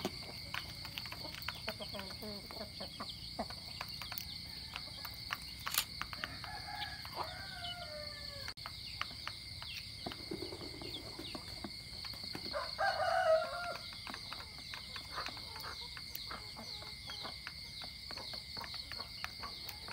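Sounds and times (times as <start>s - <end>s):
chickens pecking feed clicks: 0.0s - 19.9s
rooster crowing: 6.2s - 8.6s, 12.5s - 13.9s.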